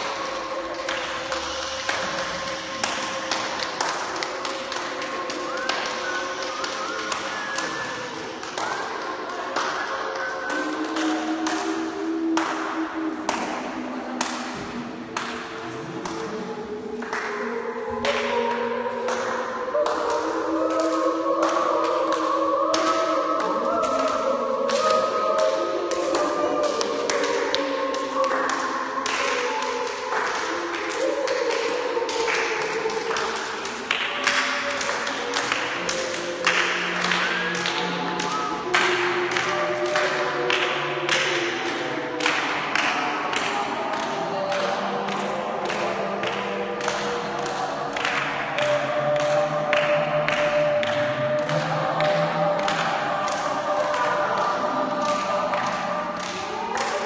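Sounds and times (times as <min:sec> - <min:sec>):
group humming tones: 0:00.0 - 0:57.0.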